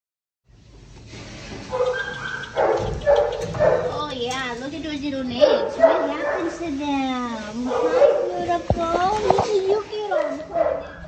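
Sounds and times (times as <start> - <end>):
dog barking and yipping: 1.7 - 4.0, 5.4 - 6.6, 7.6 - 8.5, 10.1 - 11.0.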